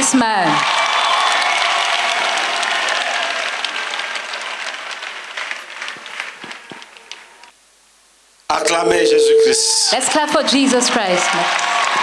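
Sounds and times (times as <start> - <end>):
crowd applauding: 0.5 - 7.4, 10.0 - 12.0.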